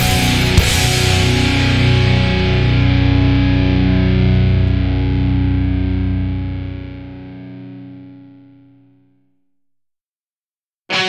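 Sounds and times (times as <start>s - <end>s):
distorted electric guitar chord ringing: 0.0s - 9.0s.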